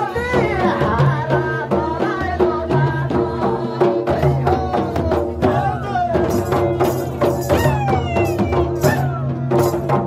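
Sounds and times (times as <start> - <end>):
barrel drums beaten by hand: 0.0 - 10.0.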